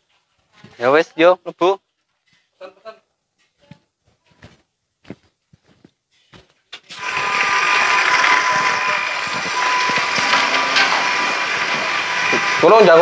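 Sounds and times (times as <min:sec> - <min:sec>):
small electric motor whirring: 0:07.0 - 0:13.0.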